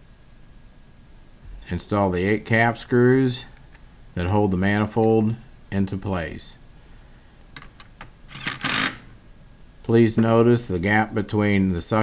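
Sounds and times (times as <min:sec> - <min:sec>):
cordless power driver running: 0:08.3 - 0:09.1.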